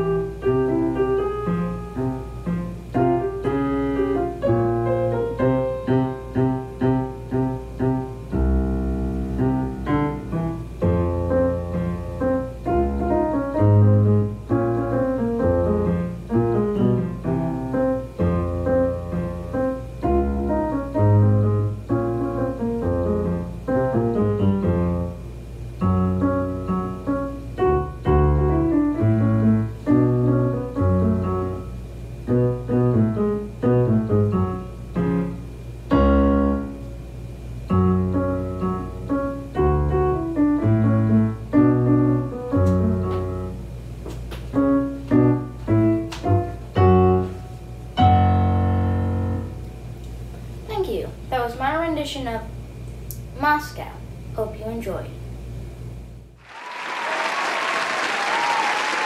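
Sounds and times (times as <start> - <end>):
solo piano music: 0.0 - 43.9, 44.5 - 50.0.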